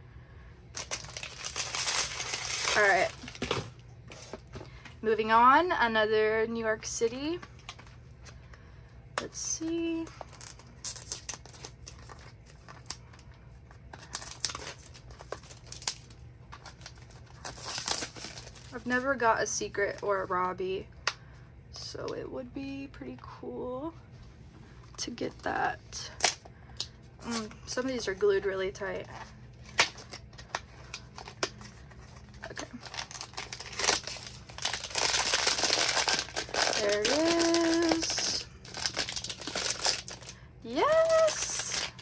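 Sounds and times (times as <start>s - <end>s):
plastic wrap crinkling and tearing: 0.7s - 4.5s, 9.6s - 19.0s, 29.0s - 42.0s
cardboard rustling: 0.8s - 4.8s.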